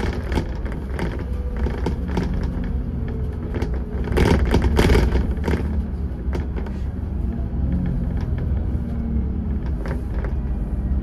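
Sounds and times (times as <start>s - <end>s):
knocks and rattles: 0.0s - 10.6s
bus engine and road rumble: 0.0s - 11.0s.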